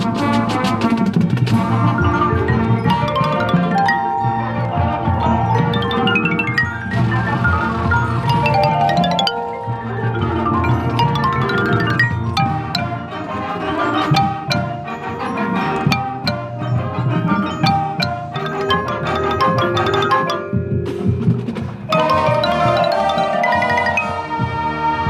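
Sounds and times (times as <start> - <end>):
marching band: 0.0 - 25.0
xylophone runs: 1.6 - 24.4.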